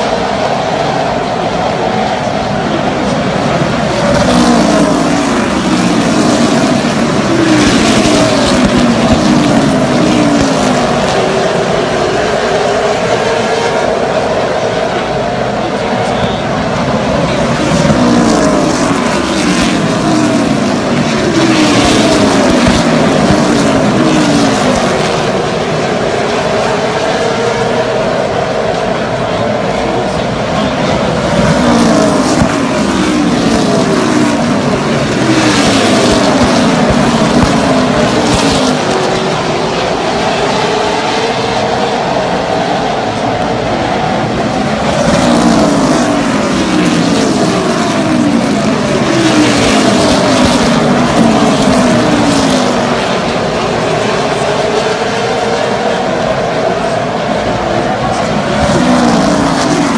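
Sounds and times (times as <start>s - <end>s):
race car engines racing: 0.0s - 59.9s.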